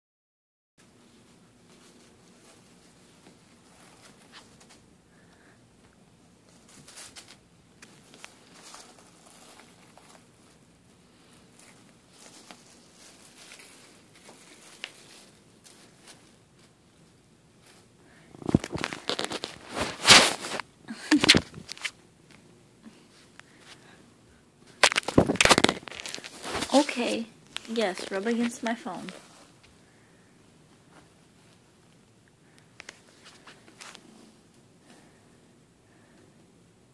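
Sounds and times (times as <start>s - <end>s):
faint wrapper crinkling: 6.4s - 24.0s, 24.7s - 30.2s
fur rubbing against microphone: 18.4s - 20.6s.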